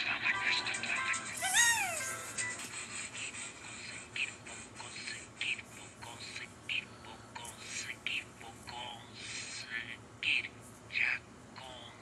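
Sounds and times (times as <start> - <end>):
short pitched call: 1.4 - 2.2.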